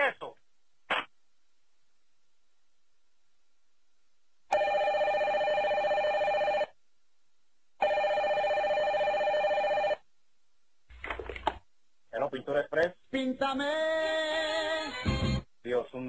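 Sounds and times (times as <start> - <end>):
desk telephone ringing: 4.5 - 6.7, 7.8 - 10.0.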